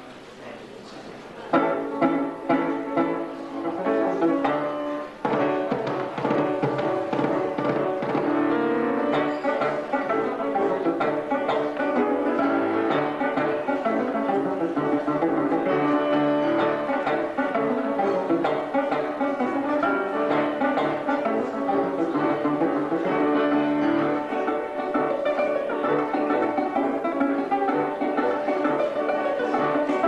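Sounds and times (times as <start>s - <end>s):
piano accompaniment: 1.4s - 30.0s
banjo plucked in quick runs: 1.5s - 30.0s.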